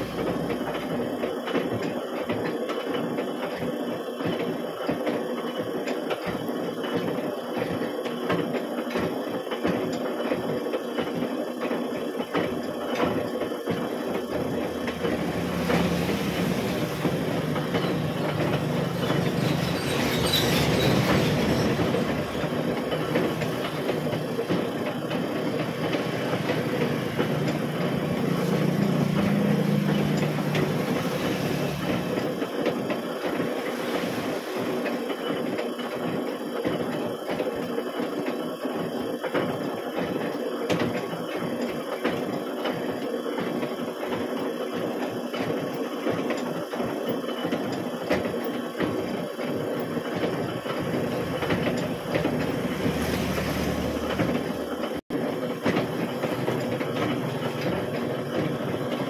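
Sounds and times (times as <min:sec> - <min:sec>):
steady low machine hum: 0:00.0 - 0:01.3, 0:12.4 - 0:35.4
metal-working machine clattering: 0:00.0 - 0:03.4, 0:10.9 - 0:37.6, 0:40.7 - 0:59.0
rhythmic machine knocking: 0:00.0 - 0:59.0.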